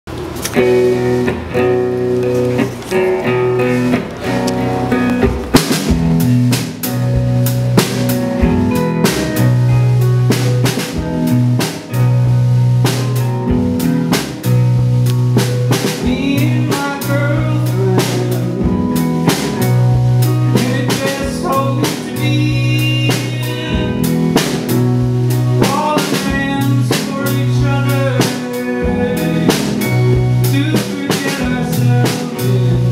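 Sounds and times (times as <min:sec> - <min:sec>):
bass notes: 0:00.1 - 0:32.9
drum kit: 0:00.1 - 0:32.9
electric guitars: 0:00.1 - 0:32.9.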